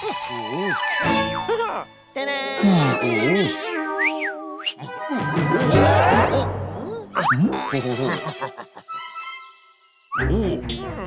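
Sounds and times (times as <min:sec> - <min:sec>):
light background music: 0:00.0 - 0:06.5.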